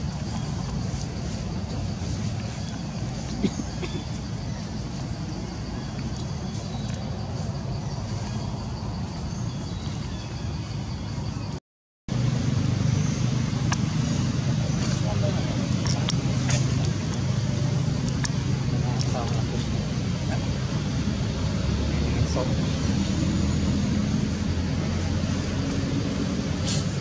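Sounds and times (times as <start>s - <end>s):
low rumbling background noise: 0.0s - 27.0s.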